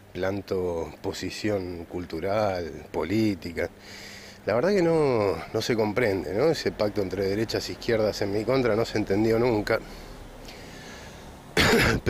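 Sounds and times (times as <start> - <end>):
man coughing: 11.6 - 12.0.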